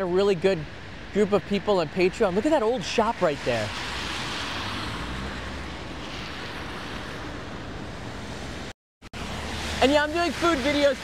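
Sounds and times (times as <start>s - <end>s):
tyres hissing on wet asphalt: 2.4s - 7.5s, 9.2s - 11.0s.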